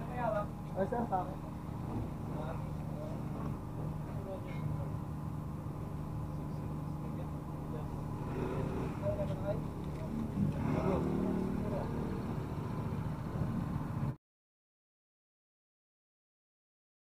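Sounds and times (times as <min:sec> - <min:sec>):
low machinery hum: 0:00.0 - 0:14.2.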